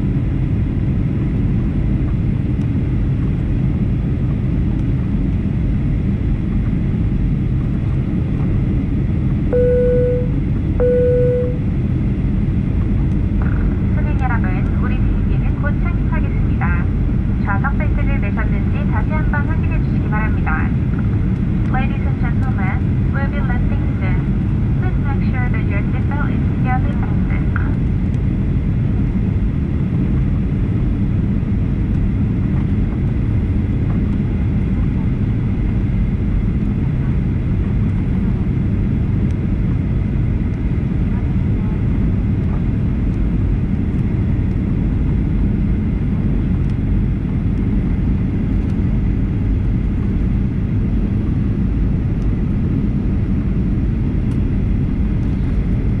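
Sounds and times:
airplane cabin roar: 0.0 - 56.0.

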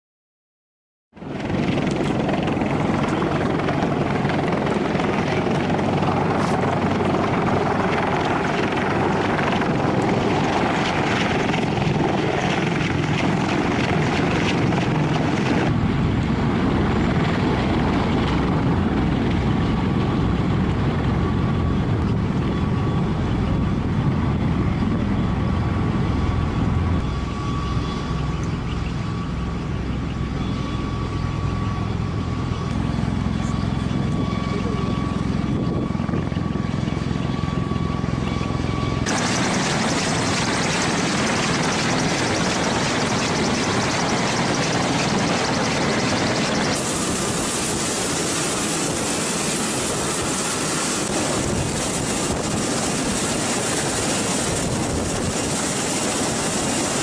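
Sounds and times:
tiltrotor aircraft rotor noise: 1.1 - 57.0
deep beating rotor sound: 1.2 - 57.0.

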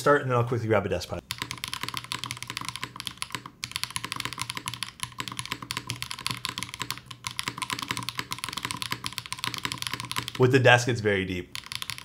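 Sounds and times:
fast mechanical keyboard typing: 1.2 - 10.5, 11.4 - 12.0.

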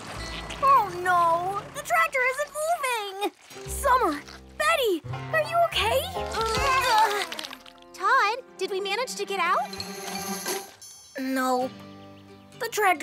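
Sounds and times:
children's background music: 0.0 - 13.0.

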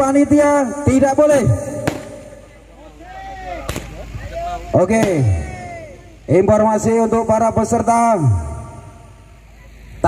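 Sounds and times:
firework bang: 1.8 - 2.2.

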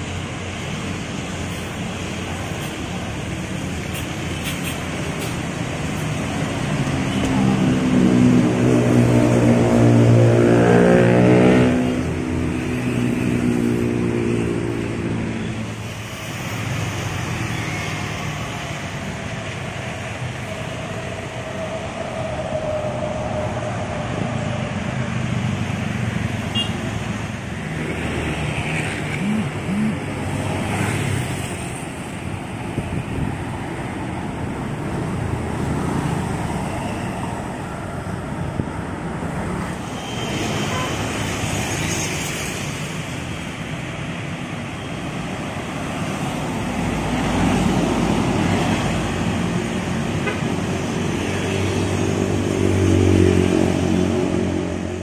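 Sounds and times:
bus diesel engine passing: 0.0 - 55.0
cars and motorbikes going by: 0.0 - 55.0.

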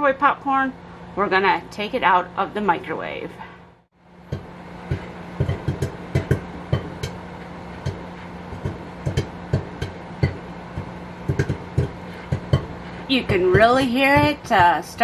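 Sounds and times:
microwave humming: 0.0 - 15.0
popcorn popping: 4.2 - 15.0.

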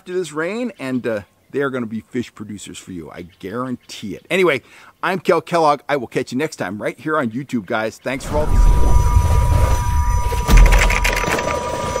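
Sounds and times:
deep boom: 8.2 - 11.4.

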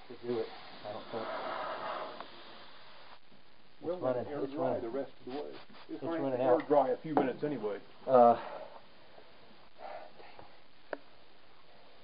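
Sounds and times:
aerosol spray can hissing: 0.0 - 3.2, 5.3 - 6.0.

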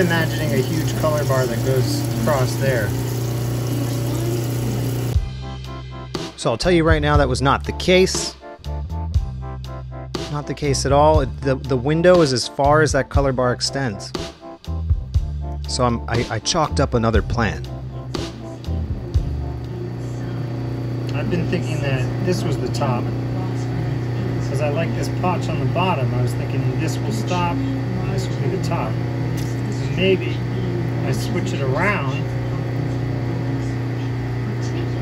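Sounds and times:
dripping water wash: 0.0 - 5.2
motor hum: 0.0 - 5.3, 17.7 - 35.0.

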